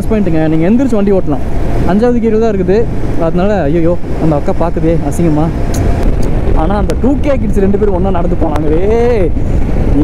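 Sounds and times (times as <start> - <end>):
motorcycle engine and wind rumble: 0.0 - 10.0.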